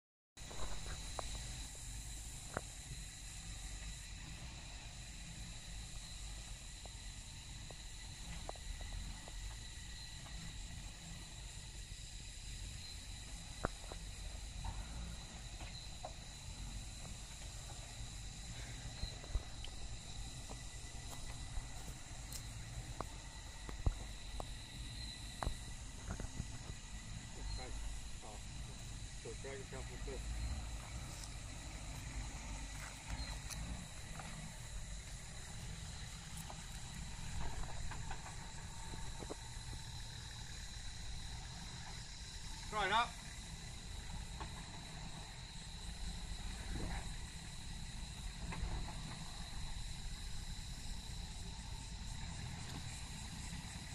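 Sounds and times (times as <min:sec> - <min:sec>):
distant engine running low: 0:00.4 - 0:53.9
high insect drone: 0:00.4 - 0:53.9.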